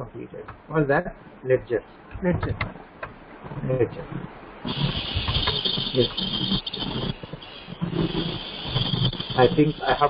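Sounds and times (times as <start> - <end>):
steady high-pitched hiss: 0.0 - 10.0
person speaking: 8.0 - 10.0.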